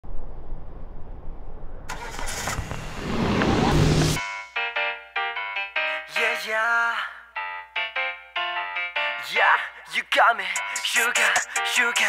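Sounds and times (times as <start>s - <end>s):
car engine rumbling: 0.0s - 4.2s
loud hissing rush: 1.9s - 4.2s.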